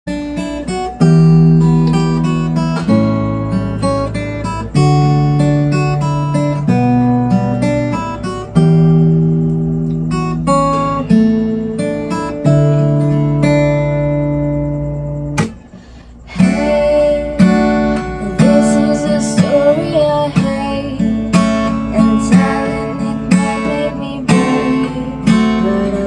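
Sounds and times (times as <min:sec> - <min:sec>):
acoustic guitar playing: 0:00.1 - 0:26.0.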